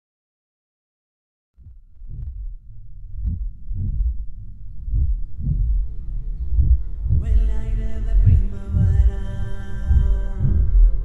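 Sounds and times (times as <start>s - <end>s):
kick drum pulsing: 1.6s - 11.0s
low bass tone: 1.6s - 11.0s.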